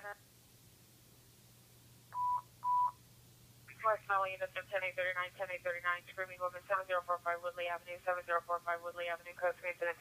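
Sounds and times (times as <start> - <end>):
short electronic beeps: 2.2 - 3.0.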